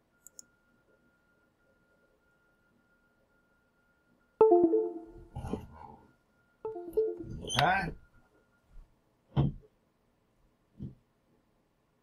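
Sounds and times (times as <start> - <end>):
faint high whine: 0.0 - 8.8
electronic chimes: 4.4 - 5.3, 6.7 - 7.5.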